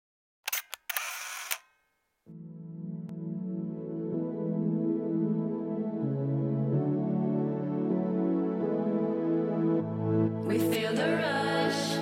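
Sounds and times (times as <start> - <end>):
film winder whirr: 0.5 - 1.7
camera shutter clicks: 0.5 - 1.8.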